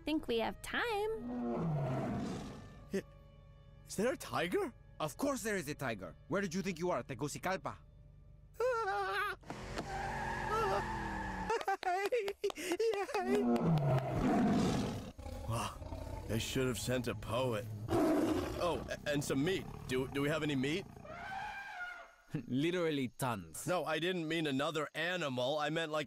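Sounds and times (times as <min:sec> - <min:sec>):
tiger roaring: 0:01.3 - 0:02.7, 0:13.3 - 0:22.0.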